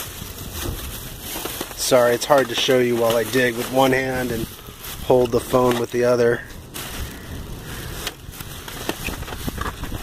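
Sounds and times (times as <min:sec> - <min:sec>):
plastic bag rustling: 0:00.0 - 0:10.0
steady low rumble: 0:00.0 - 0:10.0.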